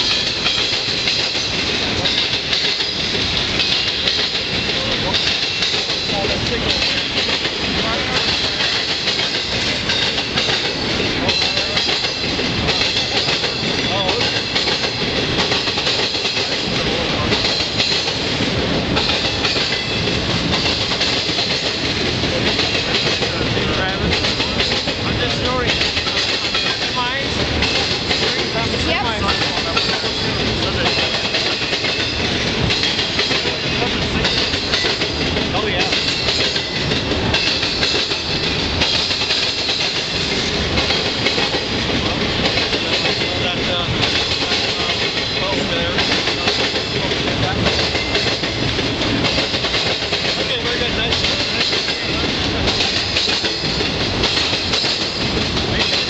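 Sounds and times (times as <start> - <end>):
train wheels clattering over crossing: 0.0 - 56.0.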